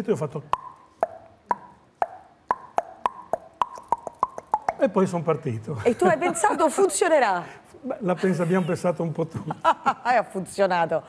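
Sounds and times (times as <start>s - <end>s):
mouth clicks: 0.4s - 5.0s.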